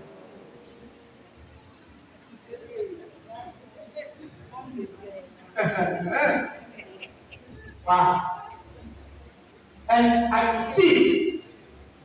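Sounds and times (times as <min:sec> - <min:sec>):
man speaking into a microphone: 0:05.6 - 0:06.6, 0:07.8 - 0:08.5, 0:09.9 - 0:11.5.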